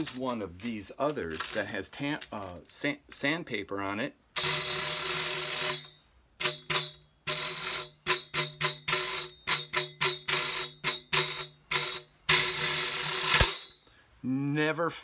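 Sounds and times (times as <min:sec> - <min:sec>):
tambourine friction roll: 0:04.4 - 0:14.2.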